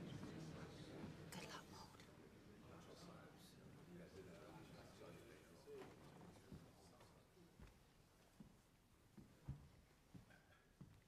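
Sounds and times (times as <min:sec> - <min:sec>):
faint whispering: 0:01.3 - 0:02.0.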